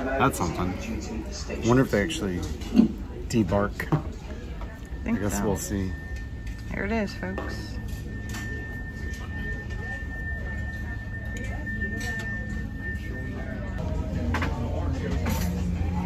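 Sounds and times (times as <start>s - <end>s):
alarm steady high tone: 3.3s - 14.1s.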